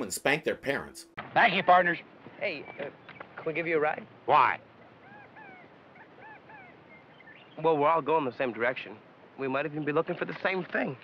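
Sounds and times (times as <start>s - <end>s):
faint high-pitched animal chirps: 5.0s - 7.2s.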